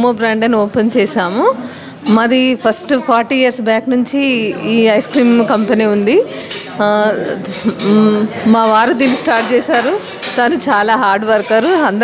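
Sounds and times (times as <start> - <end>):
woman talking: 0.0 - 12.0
tableware clinking: 4.6 - 12.0.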